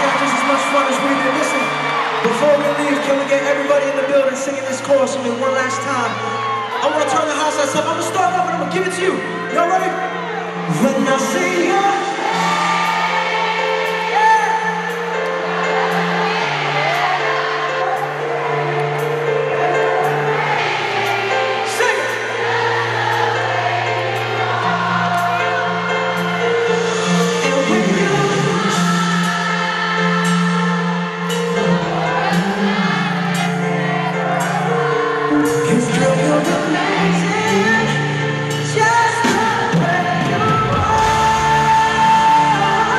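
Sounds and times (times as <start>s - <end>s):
crowd singing along: 0.0s - 4.6s, 9.2s - 42.9s
lead singer singing: 0.0s - 42.9s
live pop band playing: 0.0s - 42.9s.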